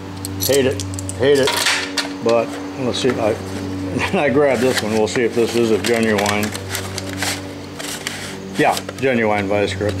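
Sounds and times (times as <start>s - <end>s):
plastic tray scraping and rustling: 4.3s - 9.2s.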